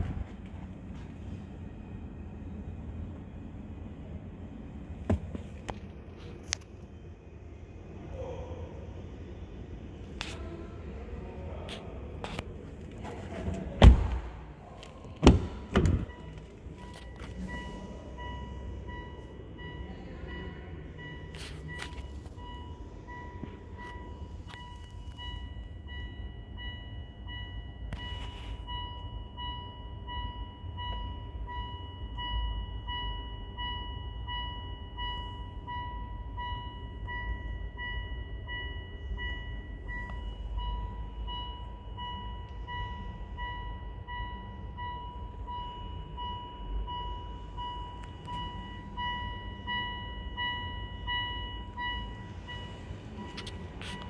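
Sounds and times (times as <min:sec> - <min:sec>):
electronic warning chime: 0:16.0 - 0:54.0.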